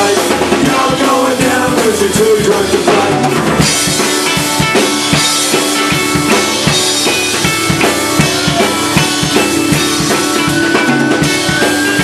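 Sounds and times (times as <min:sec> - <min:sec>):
drum kit: 0:00.0 - 0:12.0.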